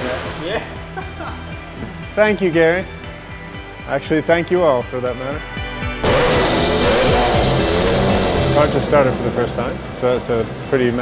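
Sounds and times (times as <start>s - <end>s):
background music: 0.0s - 11.0s
car engine starting and running: 6.0s - 11.0s.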